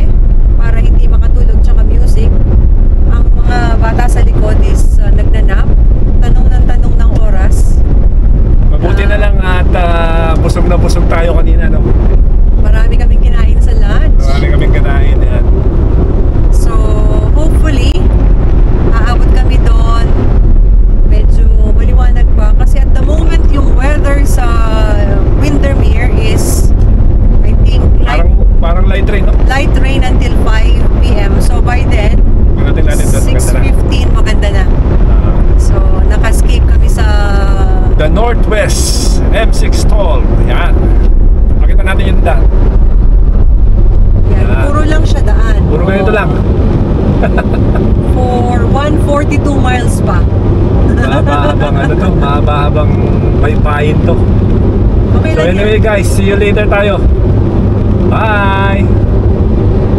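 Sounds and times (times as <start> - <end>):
two people talking: 0.0 - 2.3, 3.1 - 7.8, 8.7 - 15.6, 16.5 - 18.1, 18.9 - 20.2, 21.1 - 26.7, 27.4 - 42.6, 44.3 - 54.5, 55.1 - 57.1, 58.0 - 59.0
road and engine rumble: 0.0 - 59.9.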